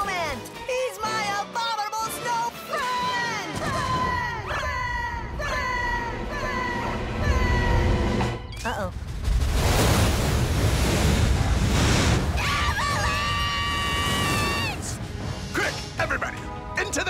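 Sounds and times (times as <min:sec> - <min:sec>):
deep rumble with rushing noise: 0:05.4 - 0:12.4
soundtrack music: 0:14.7 - 0:17.0.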